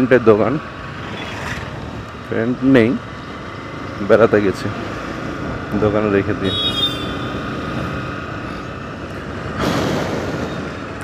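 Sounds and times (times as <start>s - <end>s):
vehicle driving with road noise: 0.0s - 11.0s
rush of passing noise: 0.6s - 6.4s, 7.0s - 11.0s
wind noise: 7.3s - 11.0s.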